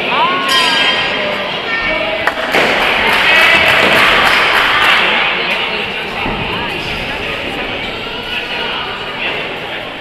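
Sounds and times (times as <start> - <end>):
spectators shouting and cheering: 0.0 - 10.0.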